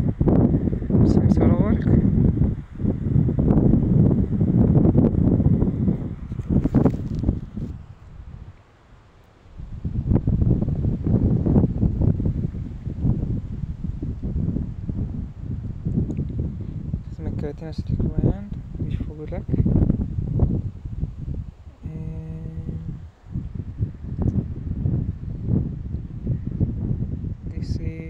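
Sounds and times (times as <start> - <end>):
wind buffeting microphone: 0.0 - 8.6, 9.5 - 28.0.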